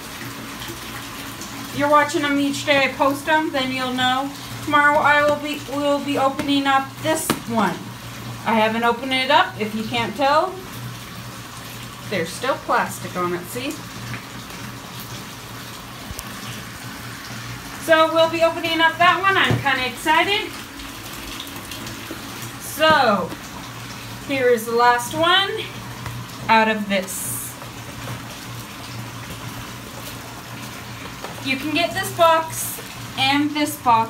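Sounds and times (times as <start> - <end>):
water pouring into bathtub: 0.0 - 34.0.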